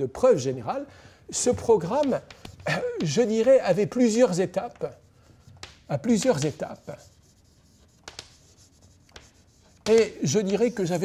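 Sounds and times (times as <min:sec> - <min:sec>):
chalk scratching on blackboard: 0:01.4 - 0:11.0
sharp chalk ticks: 0:01.6 - 0:11.0.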